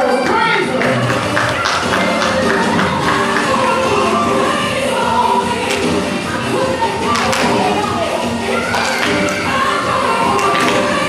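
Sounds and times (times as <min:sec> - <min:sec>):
gospel choir singing: 0:00.8 - 0:11.0.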